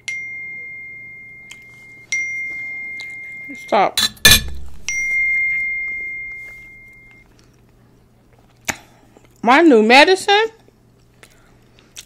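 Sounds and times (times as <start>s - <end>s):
high bell-like chime: 0.0s - 4.0s, 4.8s - 7.2s.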